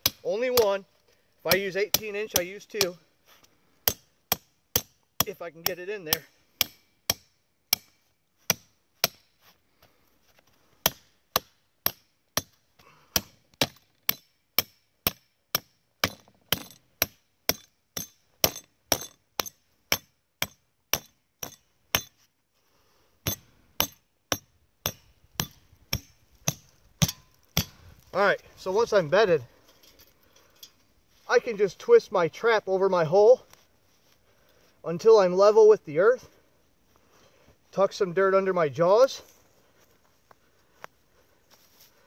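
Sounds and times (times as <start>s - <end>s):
hammer striking steel stake: 0.0s - 0.7s, 3.8s - 9.4s, 10.8s - 22.2s, 23.2s - 27.8s.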